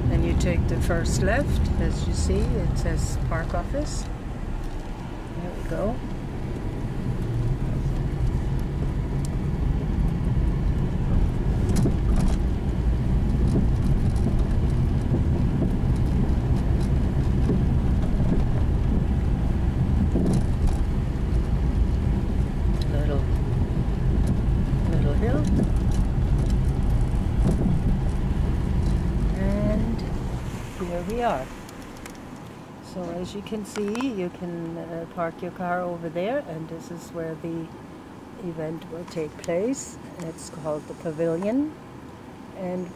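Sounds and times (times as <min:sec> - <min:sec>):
car rumbling on gravel: 0:00.0 - 0:34.2.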